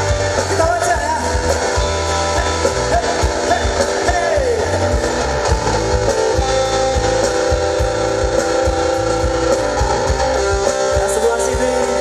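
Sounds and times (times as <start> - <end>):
drum beat: 0.0 - 12.0
electric guitar strumming: 0.0 - 12.0
live band playing: 0.0 - 12.0
guitar note sliding down: 1.3 - 11.0.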